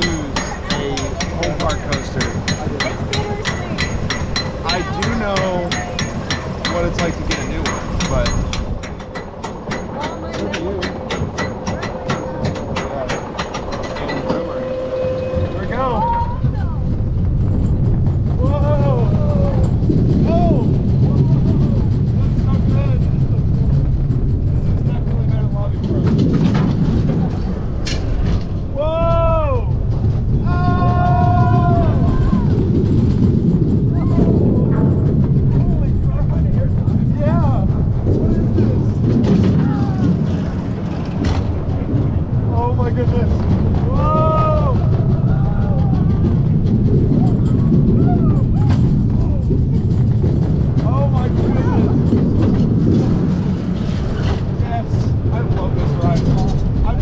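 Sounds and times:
coaster car clicking up lift hill: 0.0 - 57.0
coaster wheels rumbling: 0.0 - 57.0
riders whooping and screaming: 30.3 - 33.0, 43.8 - 48.8.

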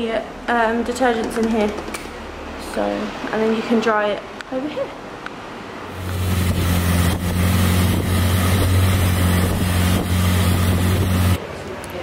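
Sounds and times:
boat engine drone: 5.9 - 11.4.

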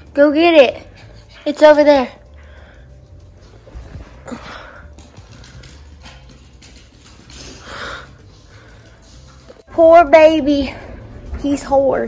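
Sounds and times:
dog claws tapping on floor: 4.7 - 9.6.

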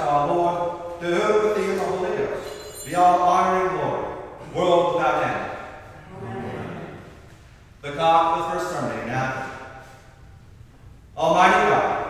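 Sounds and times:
man speaking: 0.0 - 7.0, 7.8 - 9.6, 11.2 - 12.0.

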